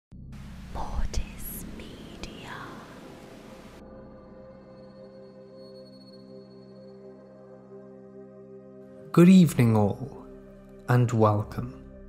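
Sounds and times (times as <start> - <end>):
low drone: 0.2 - 8.5
soft ambient tones: 0.2 - 11.8
static hiss: 0.4 - 3.8.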